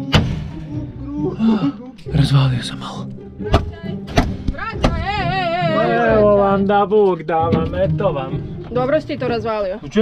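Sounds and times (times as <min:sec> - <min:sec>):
background music: 0:00.0 - 0:10.0
baton thuds on cardboard: 0:03.5 - 0:05.0.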